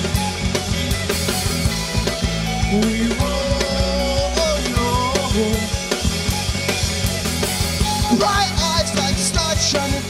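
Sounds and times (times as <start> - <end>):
bass guitar: 0.0 - 10.0
drum kit: 0.0 - 10.0
electric guitars: 0.0 - 10.0
lead guitar line bending: 0.0 - 10.0.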